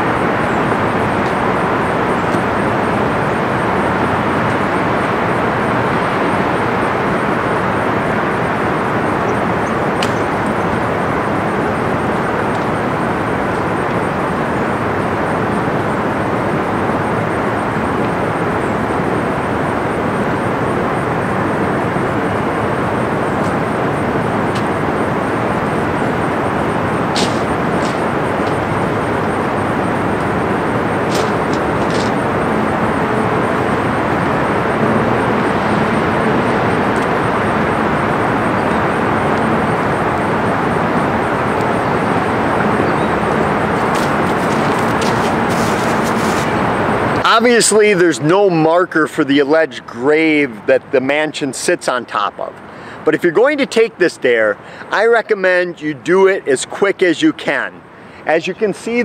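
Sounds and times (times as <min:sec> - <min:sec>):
outdoor background rush: 0:00.0 - 0:59.0.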